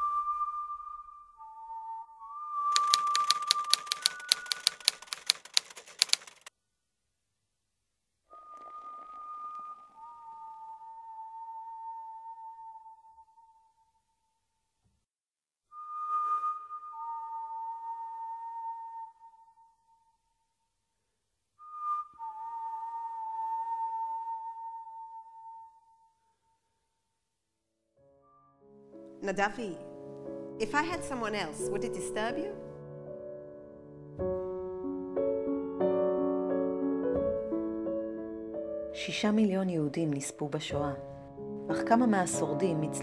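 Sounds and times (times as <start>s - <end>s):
high whistled tone: 0.0s - 5.0s, 8.3s - 14.0s, 15.7s - 20.2s, 21.6s - 26.4s
click: 2.7s - 6.5s
typewriter keys clacking: 2.8s - 6.5s.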